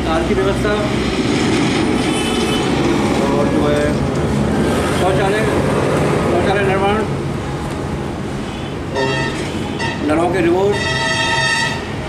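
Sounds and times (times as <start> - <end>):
passing road traffic: 0.0 - 12.0.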